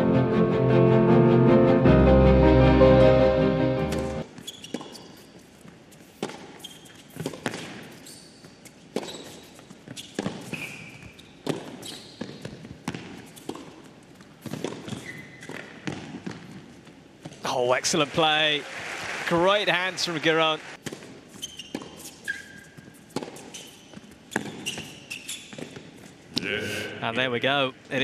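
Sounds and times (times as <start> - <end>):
musical sting: 0.0 - 4.2
shoes squeaking on court: 4.3 - 17.4, 20.9 - 26.3
racket striking tennis ball: 11.4 - 13.8, 14.4 - 16.6.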